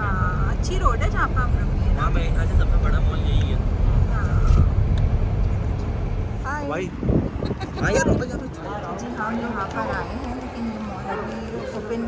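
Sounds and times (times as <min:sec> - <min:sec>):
car engine and road noise: 0:00.0 - 0:12.0
voices: 0:00.0 - 0:12.0.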